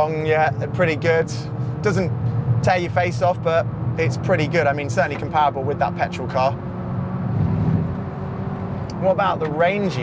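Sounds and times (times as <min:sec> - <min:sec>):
road and tyre noise: 0:00.0 - 0:10.0
electric car hum: 0:01.5 - 0:10.0.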